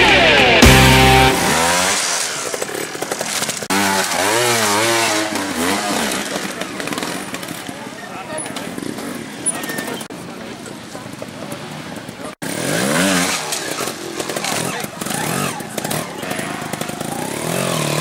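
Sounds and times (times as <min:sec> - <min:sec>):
loud rock music: 0:00.0 - 0:02.2
motorcycle engine revving: 0:00.0 - 0:10.1, 0:11.0 - 0:18.0.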